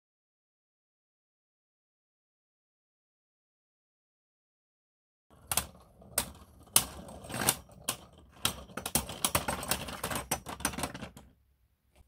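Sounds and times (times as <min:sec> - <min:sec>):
tops rattling on plastic floor: 0:05.3 - 0:11.3.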